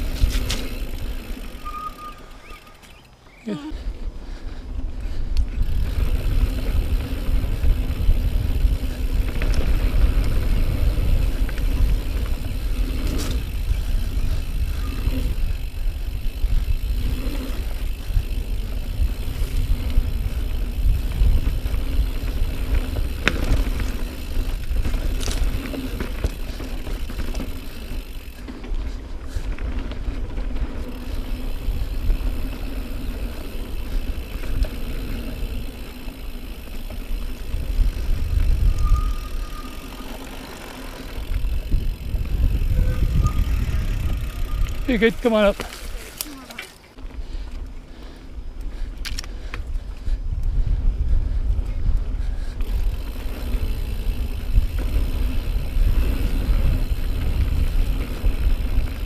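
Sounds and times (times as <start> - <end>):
bike clicks and rattles: 0.0 - 59.0
bike tyres rumbling on dirt trail: 0.0 - 59.0.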